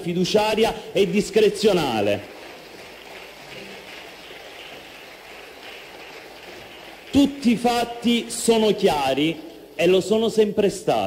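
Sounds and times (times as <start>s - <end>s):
room tone hiss: 0.2s - 11.0s.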